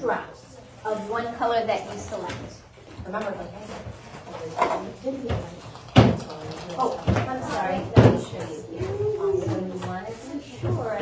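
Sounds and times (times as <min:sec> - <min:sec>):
children talking: 0:00.0 - 0:11.0
woman talking: 0:00.0 - 0:11.0.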